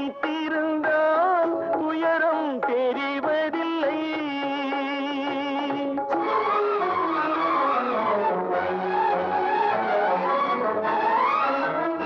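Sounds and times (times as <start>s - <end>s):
orchestral music: 6.2s - 12.0s.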